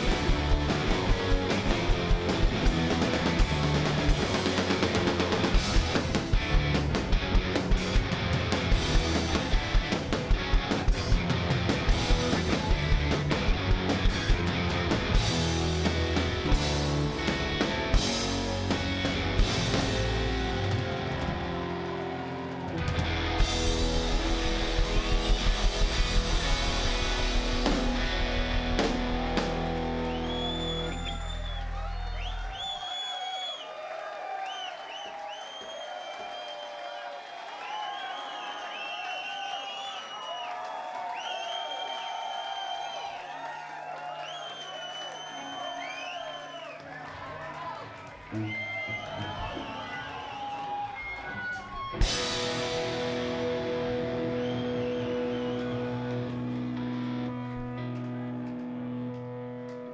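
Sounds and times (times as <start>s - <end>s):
live rock band playing: 0.0s - 31.8s, 48.2s - 59.9s
bending electric guitar notes: 0.0s - 32.1s, 50.8s - 59.9s.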